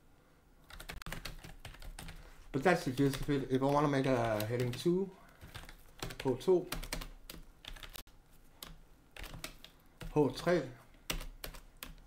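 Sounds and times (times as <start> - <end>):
computer keyboard keystrokes: 0.7 - 2.2, 3.1 - 8.0, 8.6 - 10.4, 11.1 - 12.0.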